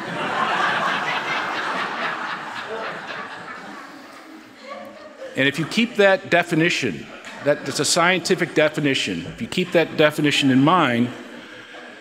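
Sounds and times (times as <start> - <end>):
audience laughing: 0.0 - 10.0.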